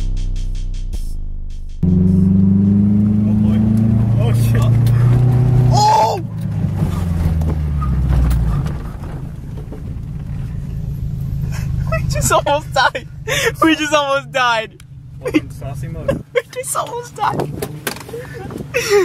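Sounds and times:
car engine at high revs: 1.8 - 18.8
car rumbling over rough ground: 1.8 - 19.0
person shouting: 5.6 - 6.3.

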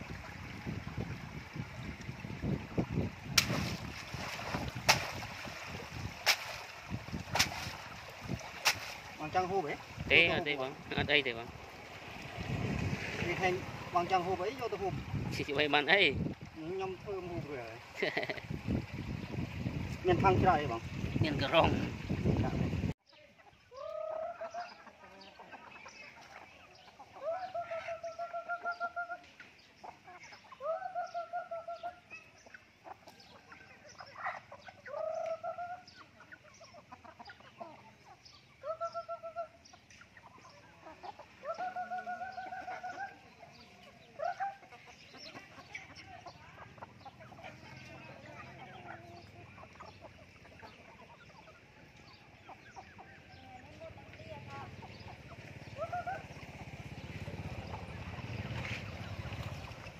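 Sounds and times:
young chickens calling: 0.0 - 59.9.

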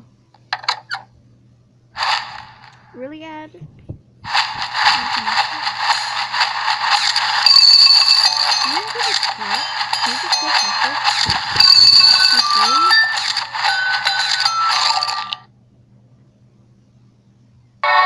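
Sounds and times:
person speaking: 4.3 - 7.4, 8.0 - 14.3
bright chiming tones: 6.0 - 15.4.

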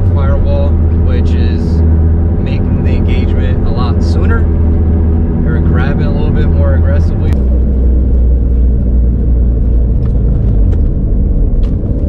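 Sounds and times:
car engine drone: 0.0 - 12.0
road noise: 0.0 - 12.0.

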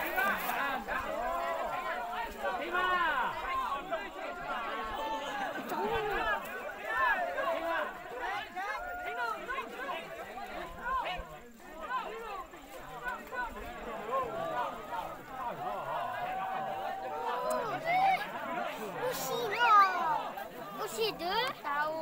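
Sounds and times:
overlapping chatter of voices: 0.0 - 22.0.

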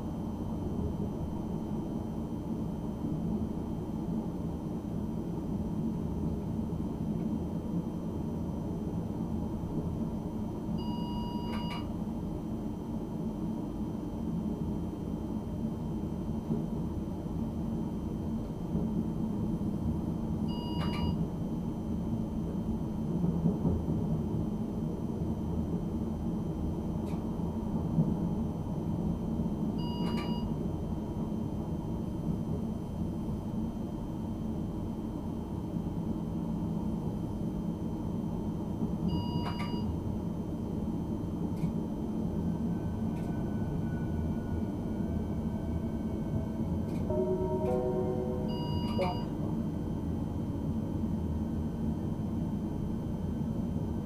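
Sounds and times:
train running gear rumble: 11.5 - 54.0
short electronic beep: 47.1 - 49.4.

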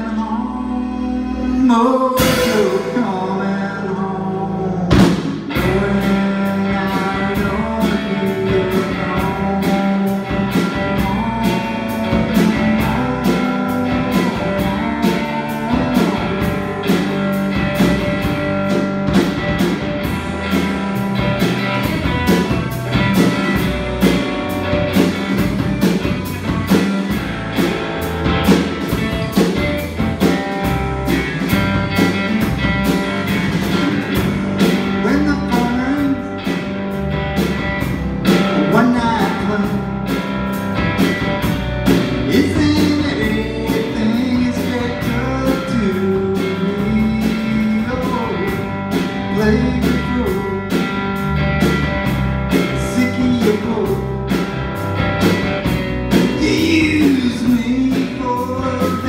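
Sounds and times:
person singing: 0.0 - 19.2, 31.8 - 36.7, 38.3 - 40.2, 42.2 - 51.0, 52.5 - 54.3, 56.1 - 59.0
electric and acoustic guitars: 0.0 - 59.0
drum kit beat: 2.2 - 3.4, 4.9 - 59.0.

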